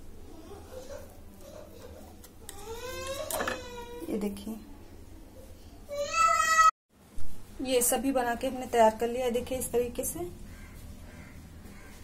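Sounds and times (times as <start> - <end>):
woman speaking: 4.0 - 4.7, 7.6 - 10.4.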